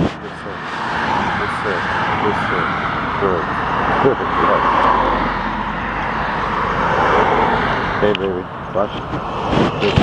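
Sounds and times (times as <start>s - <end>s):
cars passing on road: 0.0s - 10.0s.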